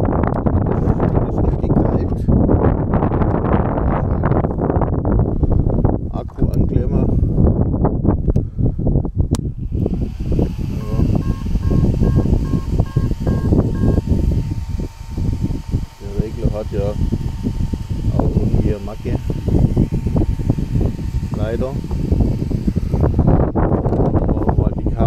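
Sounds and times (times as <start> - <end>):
low rumble: 9.6 - 24.9
two-pitch electronic beeps: 10.8 - 14.0.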